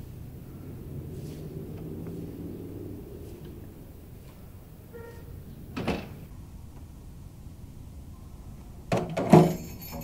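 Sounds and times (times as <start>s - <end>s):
low steady rumble: 0.0s - 8.9s.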